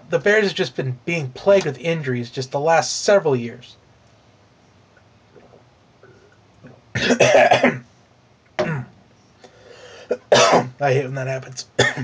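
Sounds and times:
man clearing his throat: 7.0s - 7.8s, 8.6s - 8.9s, 10.1s - 10.8s, 11.8s - 12.0s
man coughing: 7.0s - 7.8s, 8.6s - 8.9s, 10.0s - 10.8s, 11.8s - 12.0s.

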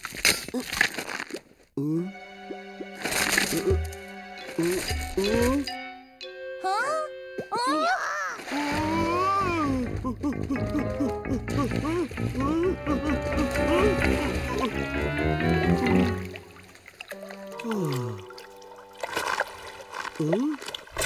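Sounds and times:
ice cracking and breaking: 0.0s - 1.6s, 3.0s - 5.7s, 19.1s - 21.0s
playful cartoon music: 1.9s - 20.5s
water splashing: 2.8s - 5.7s, 8.3s - 21.0s.

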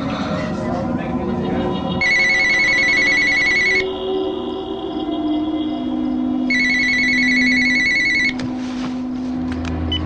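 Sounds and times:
telephone ringing: 2.0s - 3.8s, 6.5s - 8.4s.

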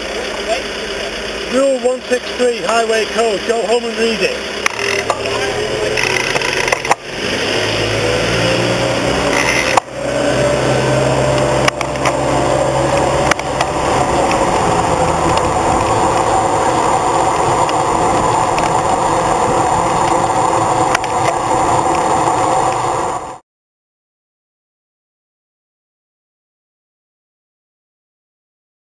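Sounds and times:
engine running: 0.0s - 23.4s
street sweeper engine and brush: 0.0s - 23.4s.

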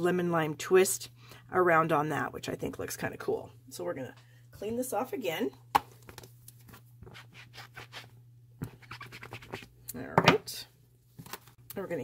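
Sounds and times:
rubber stamp scrubbing on pad: 7.1s - 9.7s.

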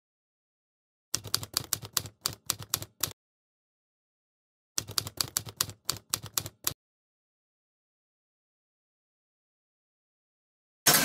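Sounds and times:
typewriter keystroke clacks: 1.2s - 3.2s, 4.8s - 6.8s.

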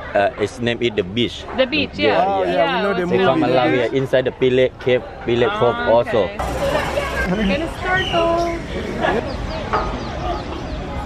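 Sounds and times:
bird chirping rapidly: 6.4s - 10.9s.

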